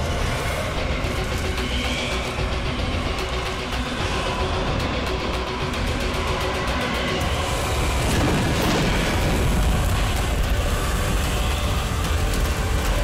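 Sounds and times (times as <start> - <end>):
dramatic background score: 0.0 - 13.0.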